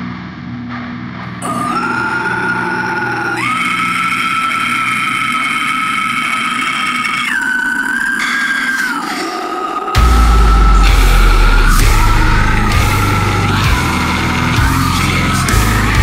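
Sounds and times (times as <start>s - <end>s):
long high held tones: 6.3s - 15.2s
low steady drone: 10.0s - 16.0s.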